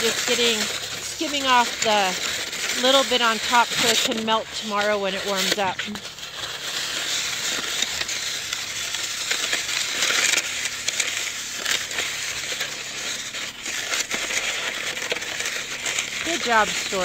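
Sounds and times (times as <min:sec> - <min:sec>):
snow shovel scraping: 0:00.0 - 0:17.0.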